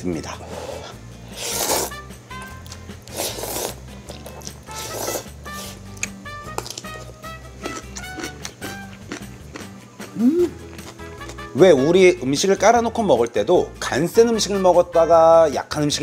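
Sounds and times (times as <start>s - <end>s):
background music: 0.0s - 16.0s
noodles slurped: 1.4s - 5.8s.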